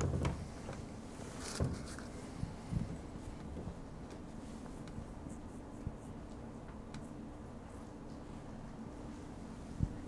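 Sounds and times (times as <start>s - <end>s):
faint clicks and scratching: 0.0s - 8.5s
steady low hum: 0.0s - 10.0s.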